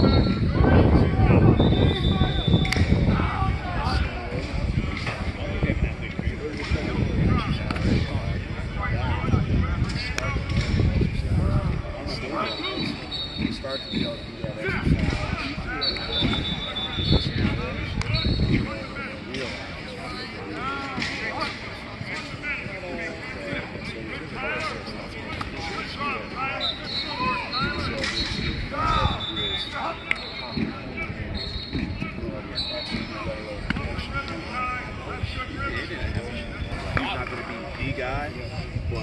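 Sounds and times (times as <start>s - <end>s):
distant voices talking: 0.0s - 39.0s.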